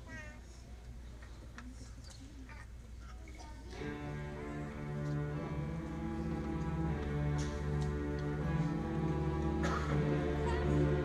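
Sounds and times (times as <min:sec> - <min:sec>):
low steady hum: 0:02.8 - 0:11.0
orchestra playing: 0:03.8 - 0:11.0
faint clicks: 0:06.3 - 0:08.6.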